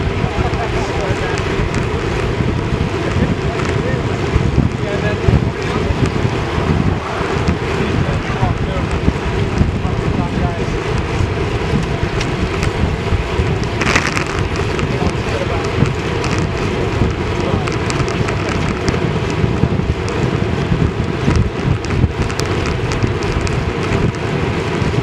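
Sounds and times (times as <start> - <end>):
wind buffeting microphone: 0.0 - 25.0.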